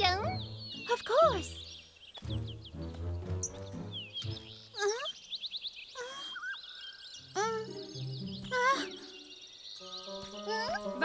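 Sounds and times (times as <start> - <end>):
cartoon background music: 0.0 - 5.1, 7.3 - 11.0
high bird chirps: 0.0 - 11.0.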